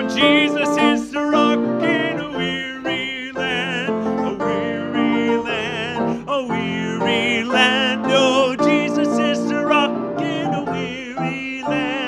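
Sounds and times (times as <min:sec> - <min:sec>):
hymn singing: 0:00.0 - 0:12.0
instrumental accompaniment: 0:00.0 - 0:12.0.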